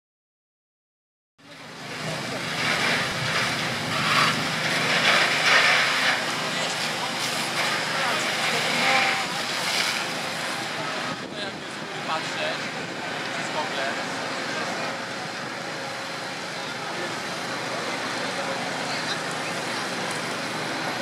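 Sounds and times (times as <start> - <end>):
low engine hum: 1.4 - 21.0
indistinct voices: 1.5 - 21.0
rushing hiss of water: 1.6 - 14.6.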